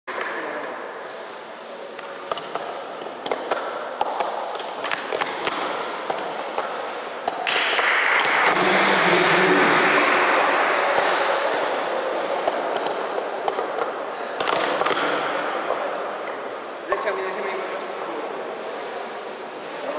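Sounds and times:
steady rushing noise: 0:07.4 - 0:13.2.

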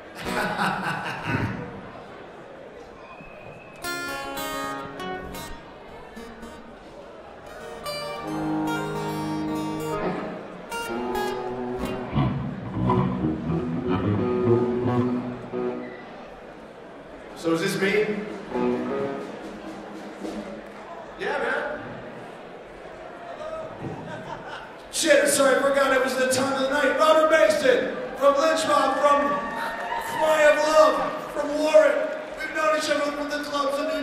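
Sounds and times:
acoustic guitar picking and strumming: 0:03.8 - 0:06.7, 0:07.4 - 0:15.8.

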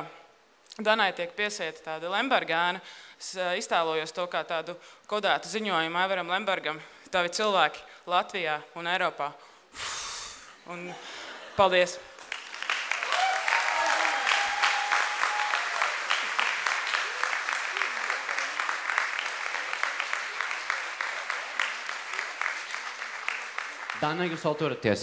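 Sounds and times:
large audience applauding: 0:12.2 - 0:24.9.

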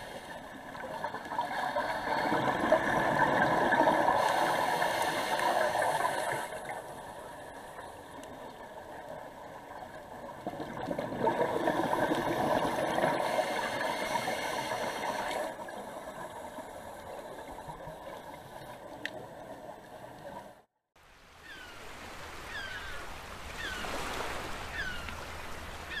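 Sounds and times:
underwater bubbling and gurgling: 0:00.0 - 0:20.7
faint water at surface: 0:00.0 - 0:26.0.

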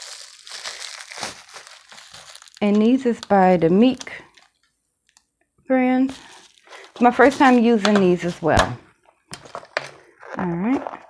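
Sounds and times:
bubble wrap crinkling: 0:00.0 - 0:05.2, 0:05.9 - 0:08.5, 0:09.1 - 0:11.0.

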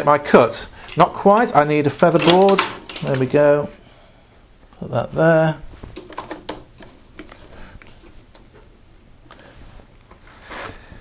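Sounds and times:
wood clicking on metal table: 0:02.2 - 0:03.4.

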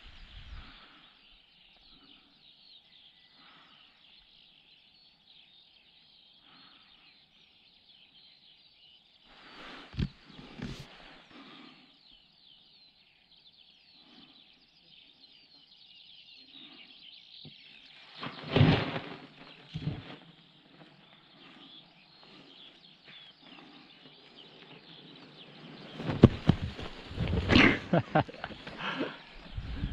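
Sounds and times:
small birds chirping: 0:00.0 - 0:29.9
rustling: 0:18.0 - 0:21.0, 0:25.6 - 0:29.9
person laughing: 0:27.5 - 0:29.2
wind buffeting microphone: 0:29.4 - 0:29.9.

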